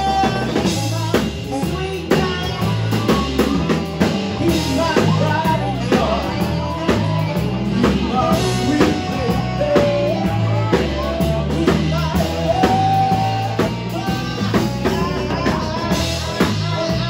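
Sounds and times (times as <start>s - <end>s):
drum kit: 0.0s - 17.0s
electric guitar: 0.0s - 17.0s
walking bass line: 0.0s - 17.0s
amplified harmonica: 1.8s - 17.0s.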